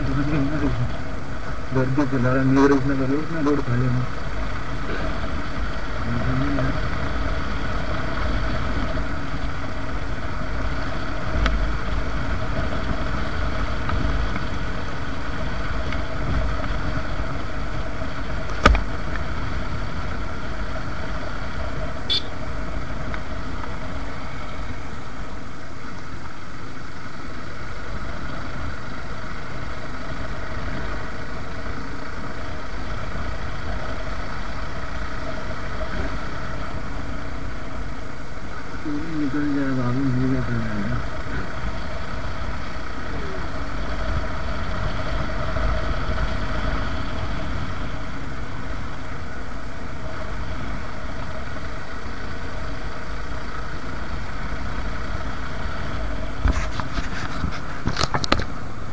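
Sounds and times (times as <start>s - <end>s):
motorcycle engine running: 0.0s - 58.9s
road noise: 0.0s - 58.9s.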